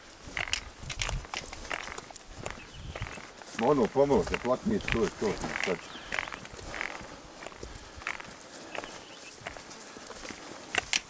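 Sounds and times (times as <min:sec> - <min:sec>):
footsteps on stony trail: 0:00.0 - 0:11.0
trekking poles clicking: 0:00.0 - 0:11.0
man talking: 0:03.5 - 0:05.9.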